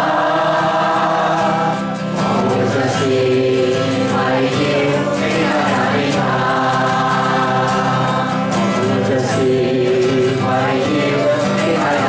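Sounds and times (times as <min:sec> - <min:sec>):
group singing worship song: 0:00.0 - 0:12.0
man singing lead: 0:00.0 - 0:12.0
strummed acoustic guitar: 0:00.0 - 0:12.0.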